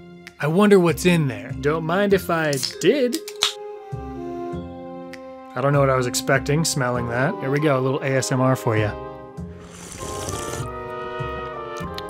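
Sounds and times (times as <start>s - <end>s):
background music: 0.0s - 12.0s
slurping from a can: 9.5s - 10.8s.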